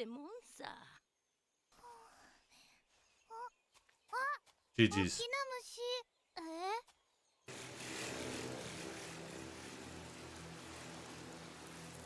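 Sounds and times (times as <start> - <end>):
steady engine drone: 7.5 - 12.0.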